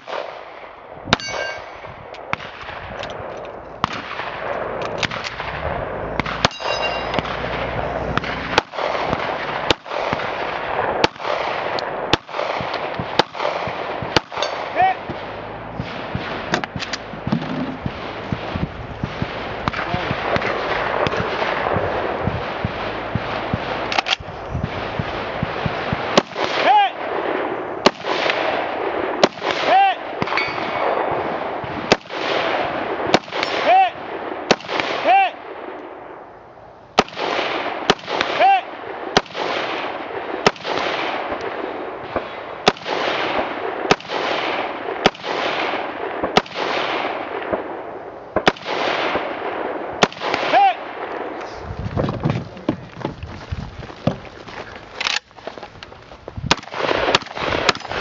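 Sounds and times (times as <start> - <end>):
rifle shots: 0.0 - 36.1, 37.0 - 51.4, 56.5 - 58.0
steel target ringing: 1.2 - 1.9, 6.1 - 8.8, 14.4 - 14.8, 30.2 - 31.1.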